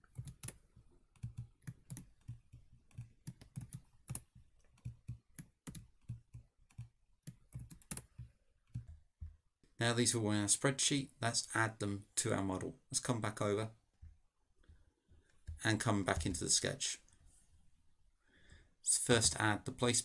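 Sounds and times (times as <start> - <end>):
typing on computer keyboard: 0.0 - 9.4.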